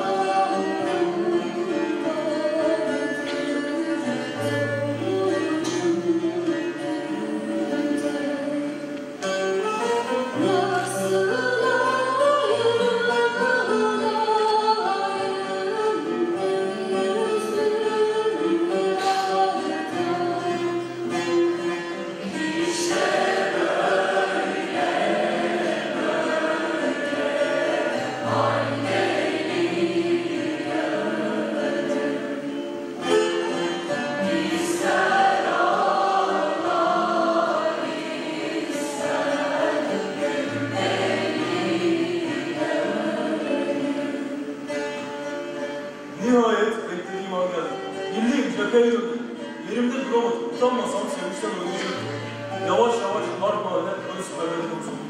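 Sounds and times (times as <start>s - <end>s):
choir singing: 0.0s - 9.2s, 9.8s - 21.6s, 22.2s - 46.2s
instruments accompanying: 0.0s - 55.0s.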